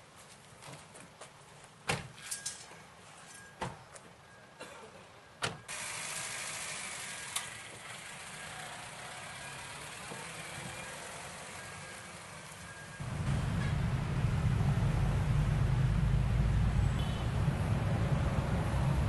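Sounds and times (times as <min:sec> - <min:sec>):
street noise hiss: 0:00.0 - 0:19.0
low traffic rumble: 0:03.7 - 0:19.0.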